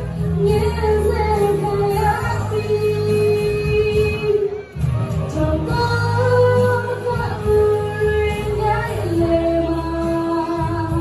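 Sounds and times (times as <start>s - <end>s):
backing music with bass: 0.0s - 11.0s
woman singing: 0.2s - 4.6s, 5.2s - 11.0s.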